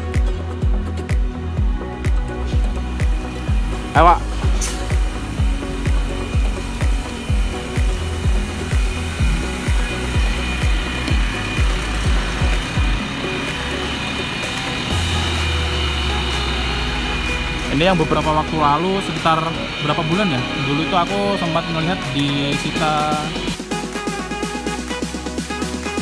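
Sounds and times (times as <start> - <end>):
bus diesel engine rumbling: 2.3 - 23.6.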